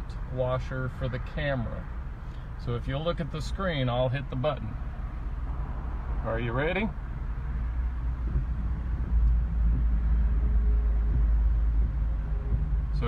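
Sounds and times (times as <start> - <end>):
car engine rumble in cabin: 0.0 - 13.0.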